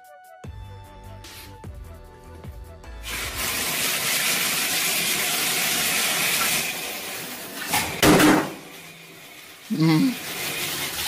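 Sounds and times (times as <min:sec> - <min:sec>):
water rushing into bathtub: 0:03.0 - 0:11.0.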